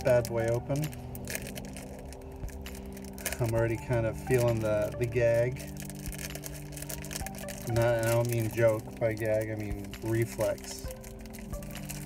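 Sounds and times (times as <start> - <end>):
snack bag crinkling: 0.0 - 12.0.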